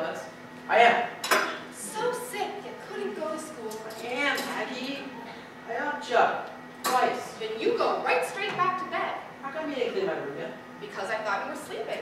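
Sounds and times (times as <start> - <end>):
metal tableware clattering: 1.2 - 1.6.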